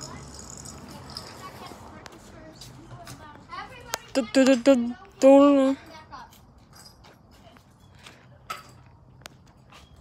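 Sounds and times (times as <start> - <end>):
distant children's voices: 0.0 - 10.0.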